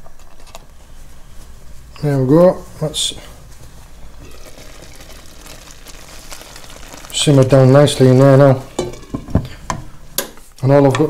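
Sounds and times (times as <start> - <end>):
stew bubbling in a pot: 2.6 - 10.4.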